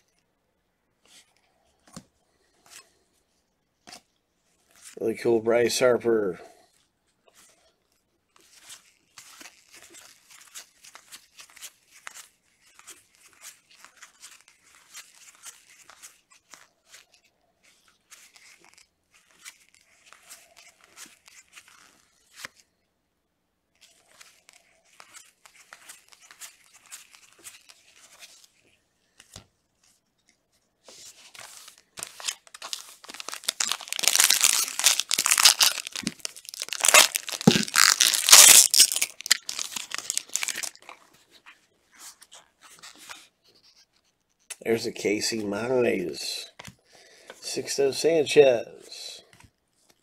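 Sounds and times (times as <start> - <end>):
trading cards sliding and flicking: 30.8 - 33.4
wrapper torn open and crinkled: 32.0 - 41.0.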